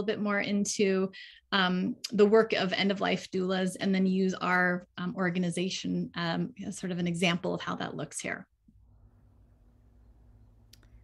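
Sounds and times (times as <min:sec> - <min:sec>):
low steady hum: 0:08.5 - 0:11.0.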